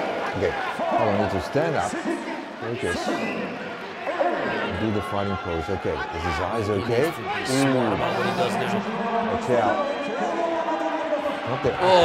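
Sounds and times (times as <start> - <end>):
arena background noise: 0.0 - 12.0.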